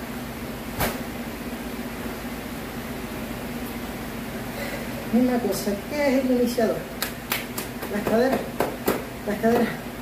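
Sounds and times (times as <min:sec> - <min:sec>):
mechanical room hum: 0:00.0 - 0:10.0
sharp thump: 0:00.8 - 0:01.1.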